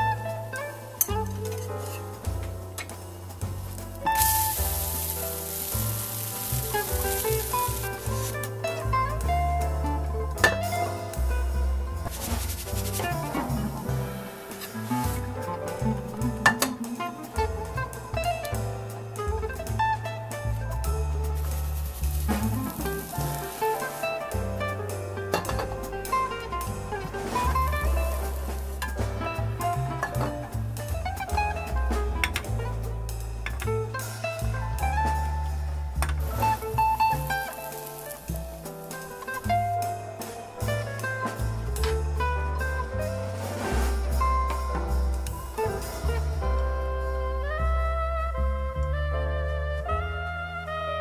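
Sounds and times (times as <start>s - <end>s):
acoustic guitar music: 0.0s - 49.5s
crepe sizzling in frying pan: 3.1s - 9.2s, 12.1s - 15.2s, 20.4s - 31.1s, 36.2s - 39.5s.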